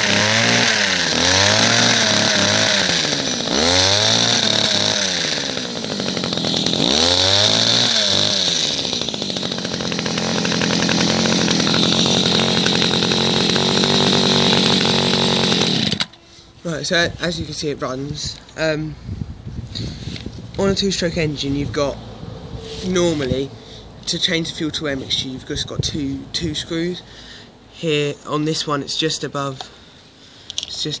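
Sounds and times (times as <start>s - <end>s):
hedge cutter engine revving: 0.0s - 27.7s.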